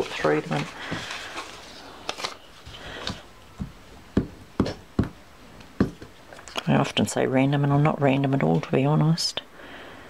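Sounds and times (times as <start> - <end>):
paper rustling: 0.0 - 3.3.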